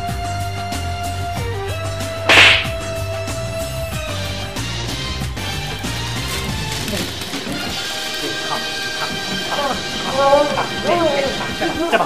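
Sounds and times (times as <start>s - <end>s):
hand slapping a head: 2.3s - 2.8s.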